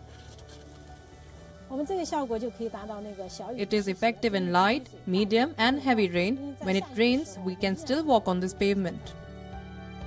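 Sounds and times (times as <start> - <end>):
water spraying onto asphalt: 0.0 - 3.7
background music with held tones: 0.0 - 10.0
woman speaking: 1.7 - 9.0.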